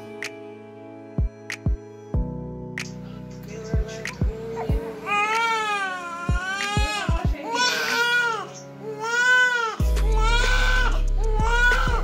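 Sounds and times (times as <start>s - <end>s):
newborn baby crying: 5.0s - 12.0s.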